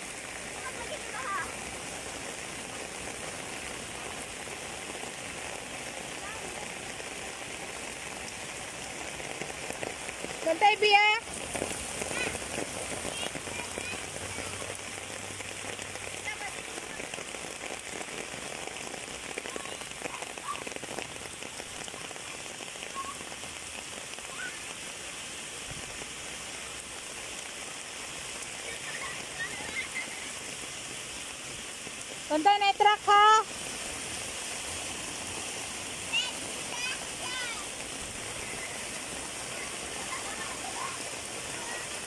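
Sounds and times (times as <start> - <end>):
rain falling: 0.0 - 42.0.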